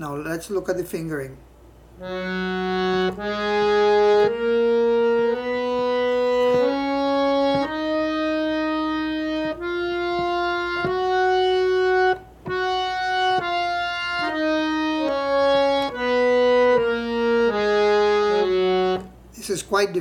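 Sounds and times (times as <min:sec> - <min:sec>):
harmonium playing a scale: 0:02.0 - 0:19.2.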